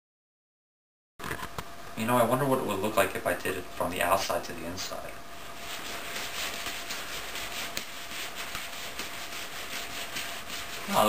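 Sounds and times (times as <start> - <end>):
nylon jacket rustling: 5.4 - 11.0.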